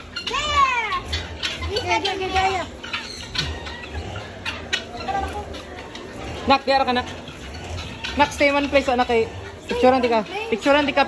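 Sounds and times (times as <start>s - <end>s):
fowl clucking: 0.0s - 11.0s.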